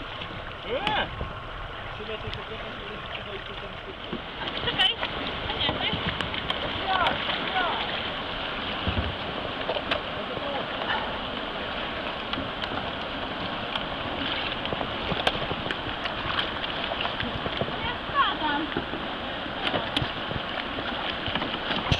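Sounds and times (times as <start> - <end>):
river water rushing: 0.0 - 21.9.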